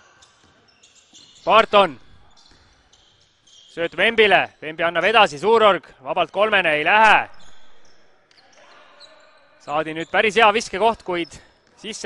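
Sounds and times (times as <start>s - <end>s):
faint basketball court sounds: 0.0s - 12.0s.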